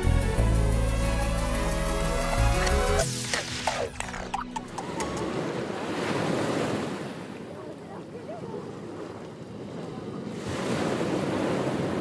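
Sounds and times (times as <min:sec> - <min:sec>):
ocean surf washing: 0:01.3 - 0:12.0.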